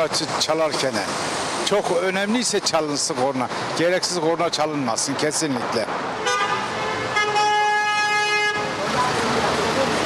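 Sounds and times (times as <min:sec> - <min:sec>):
traffic noise: 0:00.0 - 0:10.0
car horns honking: 0:06.1 - 0:08.8.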